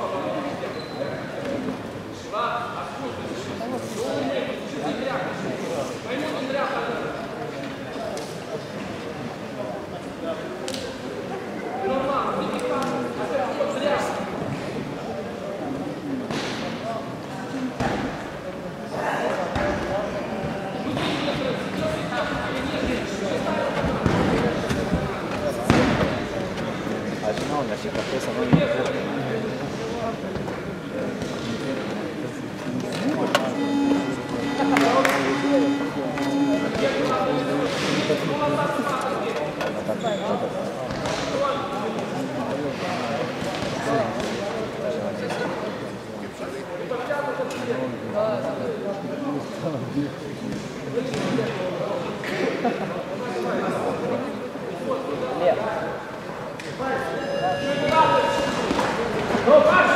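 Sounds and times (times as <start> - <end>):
indistinct voices echoing: 18.1 - 39.6, 51.1 - 59.9
voices shouting in echoing hall: 32.3 - 37.6, 56.8 - 59.9
held note: 33.3 - 37.1, 57.1 - 58.9.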